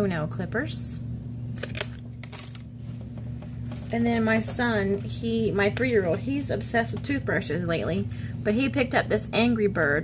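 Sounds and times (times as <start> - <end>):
plastic blister pack clicks: 1.6 - 2.6.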